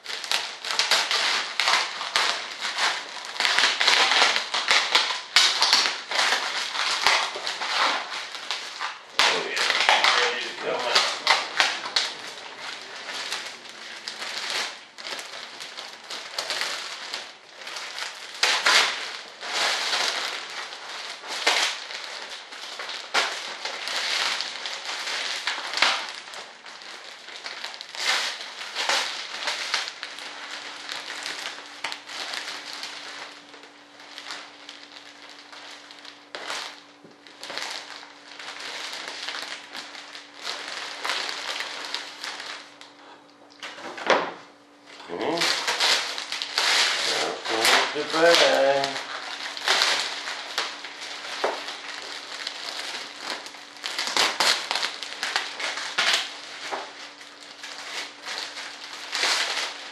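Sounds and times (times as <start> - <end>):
faint steady hum: 0.0 - 59.9
plastic film crinkling: 0.0 - 59.9.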